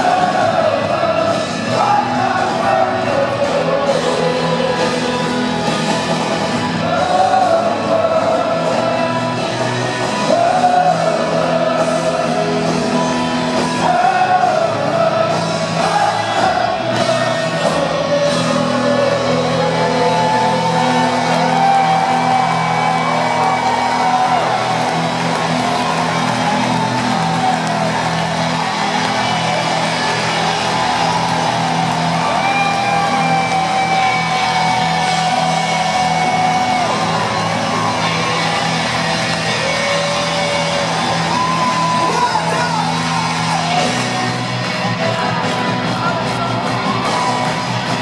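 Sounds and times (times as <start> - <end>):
crowd whooping and shouting: 0.0 - 48.0
rock band through stadium speakers: 0.0 - 48.0.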